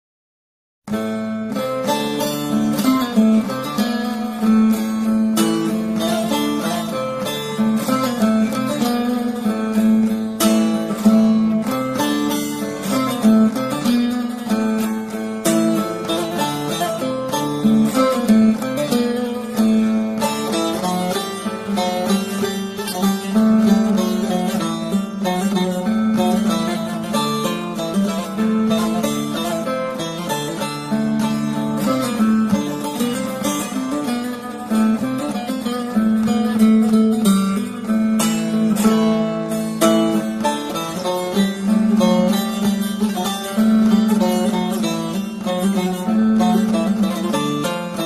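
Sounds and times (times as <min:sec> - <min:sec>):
plucked lute melody over drone: 0:00.9 - 0:48.0.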